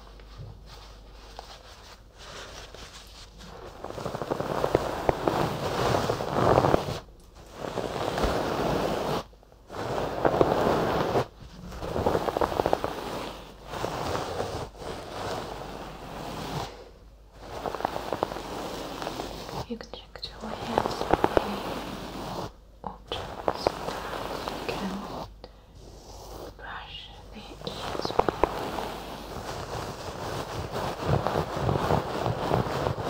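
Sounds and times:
stuffed toy rustling on microphone: 0.0 - 33.0.

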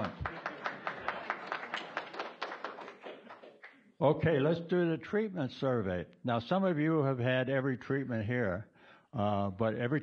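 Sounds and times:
audience clapping: 0.0 - 3.9.

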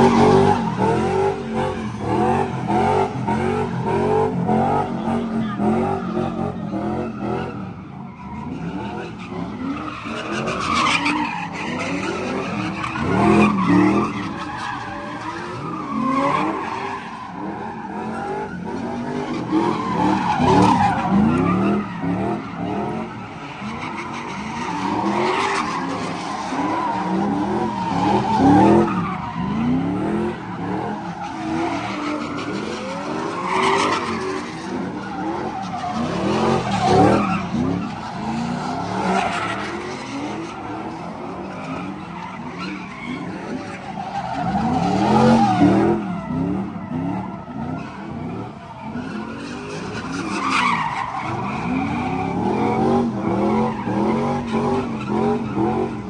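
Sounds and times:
car engines revving: 0.0 - 56.0
tyres skidding and squealing: 0.0 - 56.0.

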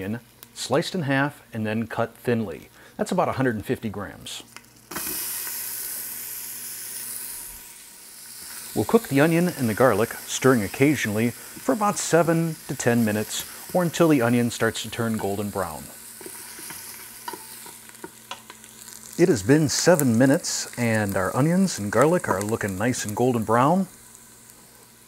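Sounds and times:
onion sizzling in hot oil: 2.1 - 25.0.

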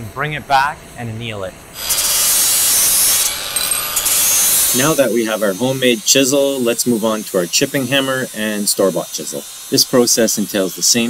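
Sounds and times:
torch flame hissing: 1.7 - 11.0.

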